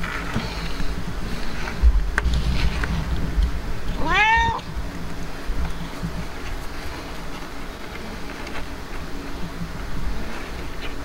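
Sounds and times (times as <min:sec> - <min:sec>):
cat meowing: 0:04.0 - 0:04.6.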